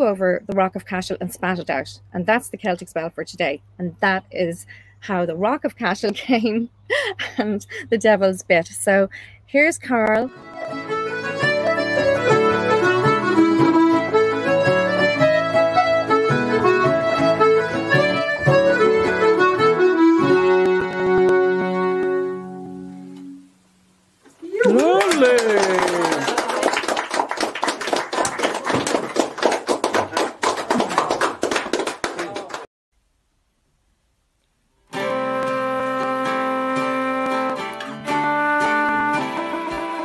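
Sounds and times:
accordion: 0:06.1 - 0:23.4, 0:34.9 - 0:40.0
strummed string accompaniment: 0:10.0 - 0:23.6, 0:34.9 - 0:40.0.

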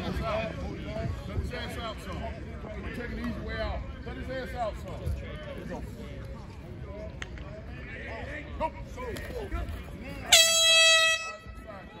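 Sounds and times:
scattered voices: 0:00.0 - 0:10.5
air horn blast: 0:10.3 - 0:11.6.

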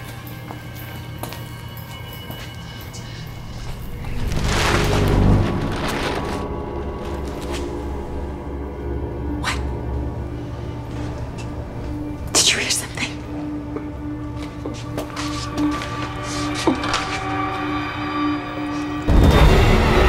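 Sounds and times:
horror score low drone: 0:02.5 - 0:20.0
plastic sheeting rustling: 0:03.9 - 0:08.1.

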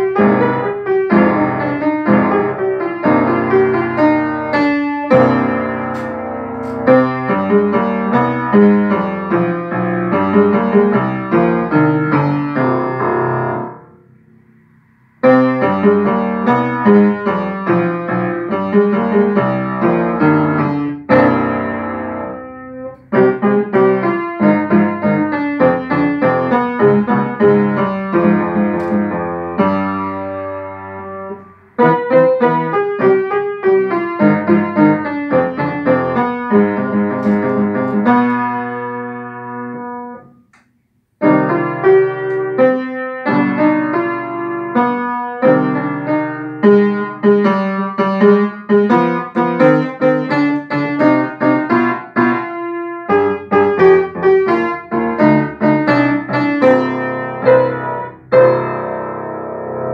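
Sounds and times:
upright piano playing: 0:00.0 - 0:59.9.

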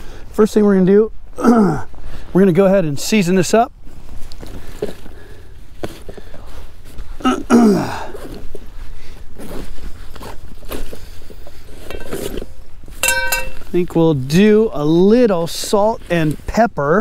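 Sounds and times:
rummaging in a fabric backpack: 0:03.9 - 0:13.0.

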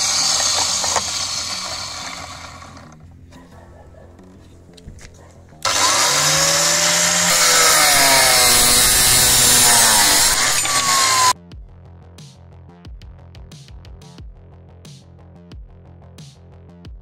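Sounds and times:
cut-off saw grinding steel: 0:00.0 - 0:03.0, 0:05.6 - 0:11.4.

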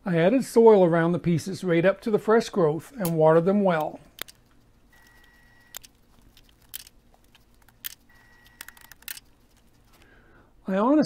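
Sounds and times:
faint high steady tone: 0:04.9 - 0:05.8.

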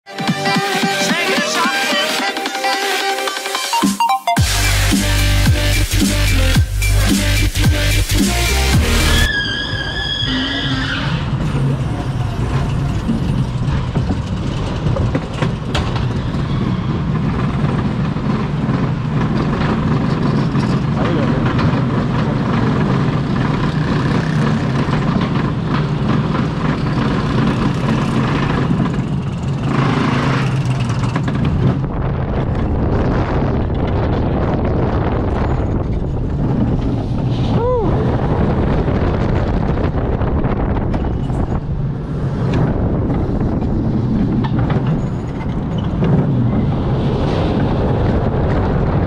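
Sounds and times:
roller coaster lift rumble and clatter: 0:09.2 - 0:49.0.

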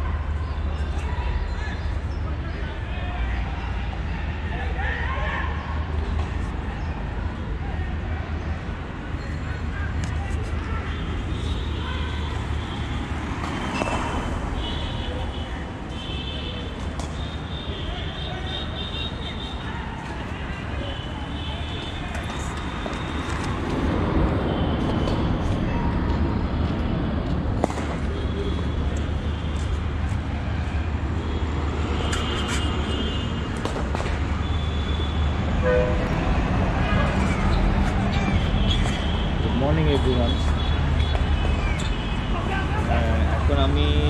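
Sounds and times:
street traffic: 0:00.0 - 0:44.0
vehicle horn toot: 0:34.4 - 0:36.1.

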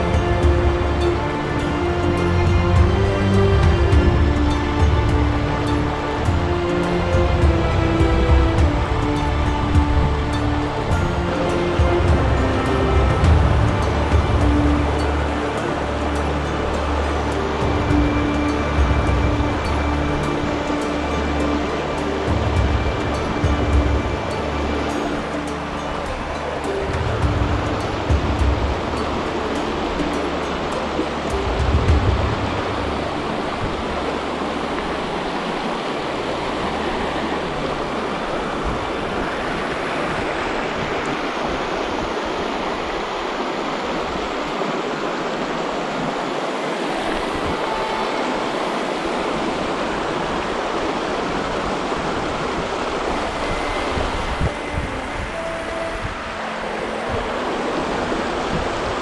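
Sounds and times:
music with low sustained tones: 0:00.0 - 0:59.0
river rushing: 0:00.0 - 0:59.0.

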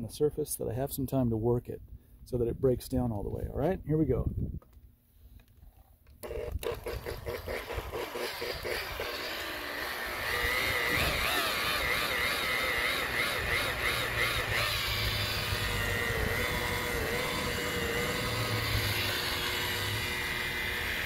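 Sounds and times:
rotary buffer motor whine: 0:06.2 - 0:21.0.

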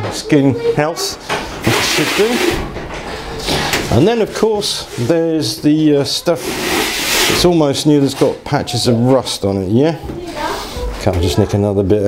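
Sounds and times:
cloth scrubbing metal drum: 0:01.5 - 0:03.0, 0:06.1 - 0:07.6.

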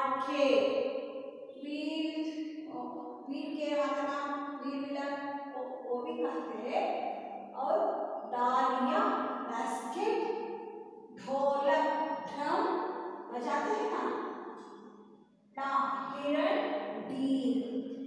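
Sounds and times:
woman reading aloud: 0:00.0 - 0:00.6, 0:01.6 - 0:06.9, 0:07.6 - 0:10.2, 0:11.2 - 0:12.7, 0:13.3 - 0:14.1, 0:15.6 - 0:17.6.

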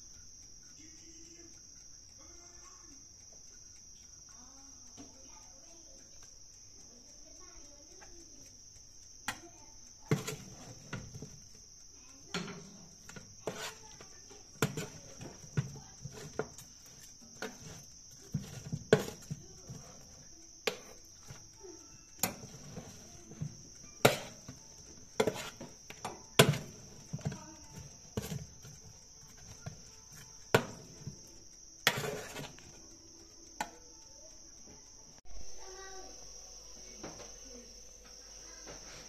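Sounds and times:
crickets chirring: 0:00.0 - 0:39.0
metal tongs clinking on metal tray: 0:10.1 - 0:11.4, 0:12.3 - 0:21.4, 0:22.2 - 0:31.2.

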